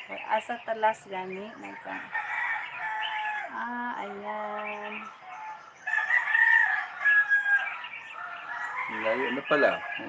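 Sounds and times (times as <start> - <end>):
rooster crowing: 1.8 - 3.7, 5.2 - 10.0.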